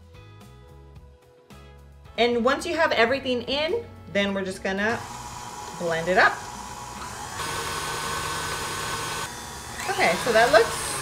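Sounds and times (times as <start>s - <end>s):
stand mixer motor whining: 5.0s - 11.0s.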